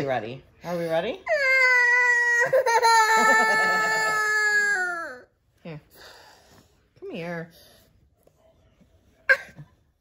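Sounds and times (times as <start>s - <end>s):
young boy crying: 1.2s - 5.3s.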